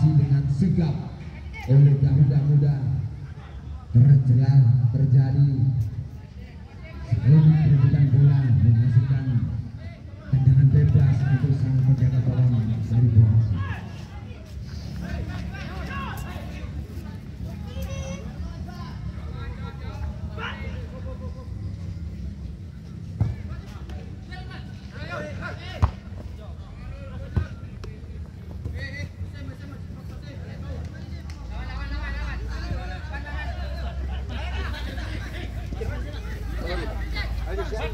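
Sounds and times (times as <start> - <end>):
people shouting and talking: 0.0 - 37.9.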